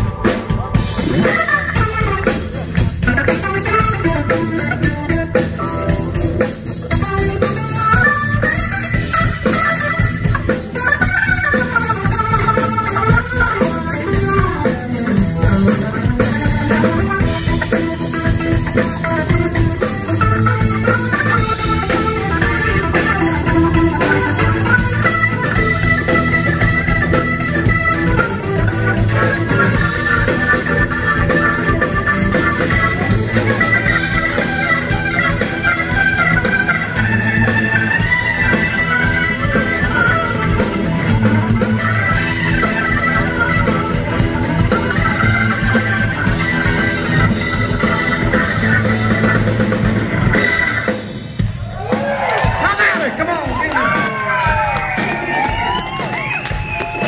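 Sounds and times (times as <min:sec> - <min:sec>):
repeating bass line: 0:00.0 - 0:51.0
organ playing chords: 0:00.0 - 0:51.7
drums: 0:00.0 - 0:57.0.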